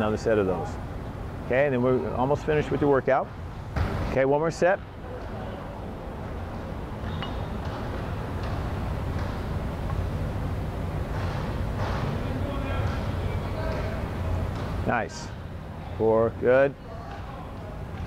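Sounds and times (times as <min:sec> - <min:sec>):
faint distant voices: 0:04.5 - 0:07.0, 0:12.0 - 0:18.0.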